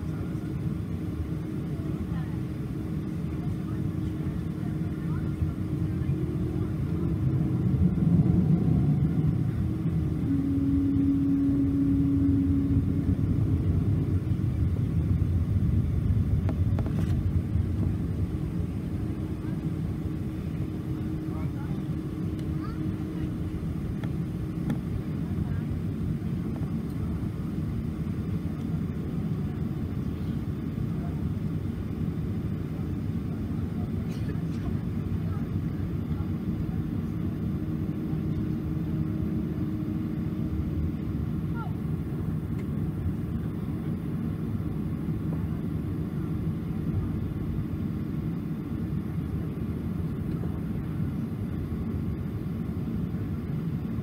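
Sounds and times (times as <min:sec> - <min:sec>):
airplane cabin rumble: 0:00.0 - 0:54.0
faint steady hum: 0:00.0 - 0:54.0
brief higher tone: 0:09.9 - 0:14.1.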